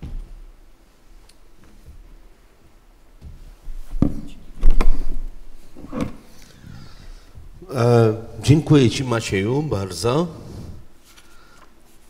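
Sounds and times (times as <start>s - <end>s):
microphone handling bumps: 3.2s - 7.7s.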